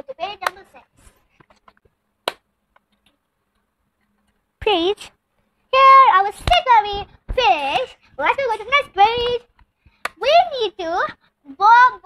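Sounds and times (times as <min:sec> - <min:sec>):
child's voice: 0:00.0 - 0:01.2, 0:05.7 - 0:09.5, 0:10.2 - 0:12.0.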